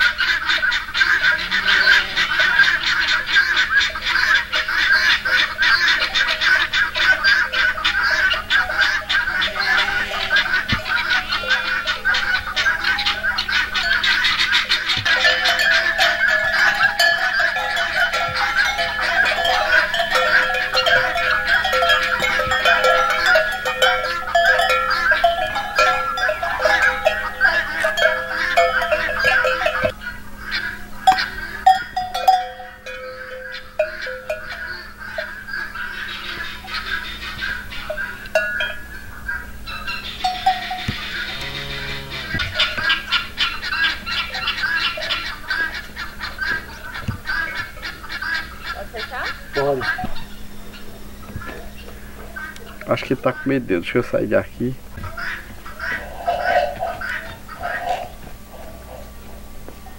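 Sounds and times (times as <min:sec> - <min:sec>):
cow bells clanking: 0:04.1 - 0:30.0, 0:30.8 - 0:51.8, 0:55.9 - 0:58.6.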